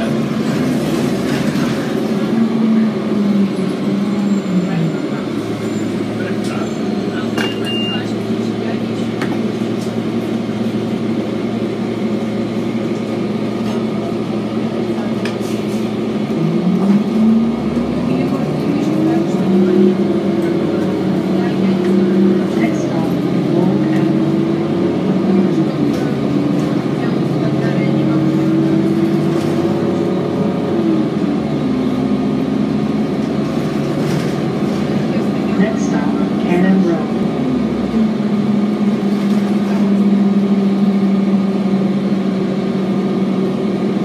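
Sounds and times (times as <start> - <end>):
bus diesel engine: 0.0 - 44.0.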